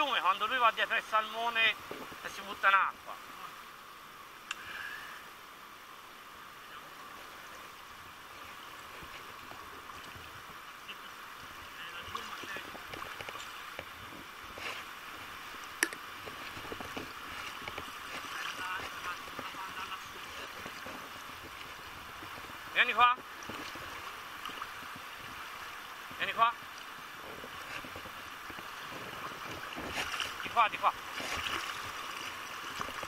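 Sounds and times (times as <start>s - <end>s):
river water flowing: 0.0s - 33.0s.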